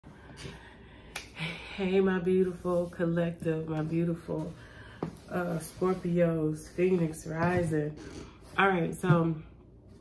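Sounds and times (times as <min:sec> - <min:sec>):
woman speaking: 0:01.4 - 0:09.5.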